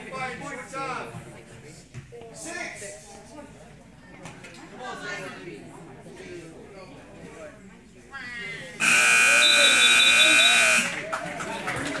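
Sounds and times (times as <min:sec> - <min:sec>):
scoreboard buzzer blast: 0:08.8 - 0:11.0.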